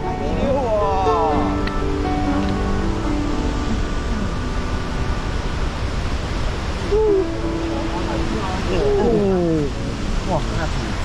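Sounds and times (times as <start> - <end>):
wind rumble on microphone: 0.0 - 11.0
voice crying out: 6.8 - 7.4
person hooting call: 6.8 - 7.5.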